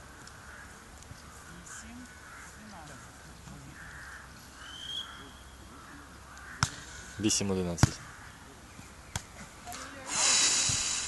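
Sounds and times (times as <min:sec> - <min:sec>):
volleyball being struck: 0:06.6 - 0:07.0, 0:07.8 - 0:08.0
person hissing close to microphone: 0:10.1 - 0:11.0.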